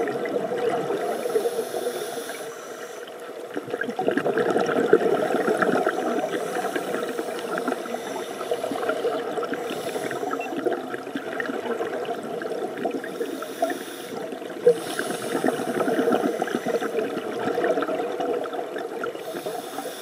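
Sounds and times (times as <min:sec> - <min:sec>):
gurgling exhaled bubbles: 0:00.0 - 0:02.4, 0:03.1 - 0:19.8
diver inhaling through regulator: 0:01.0 - 0:03.2, 0:05.2 - 0:10.6, 0:13.0 - 0:17.3, 0:19.2 - 0:20.0.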